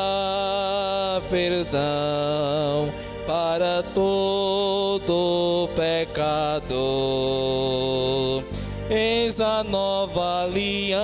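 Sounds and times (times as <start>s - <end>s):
low accompaniment: 0.0s - 11.0s
slow hymn melody: 0.0s - 11.0s.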